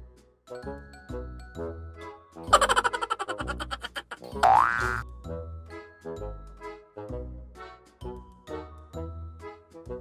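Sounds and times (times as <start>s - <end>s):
jingly background music: 0.5s - 10.0s.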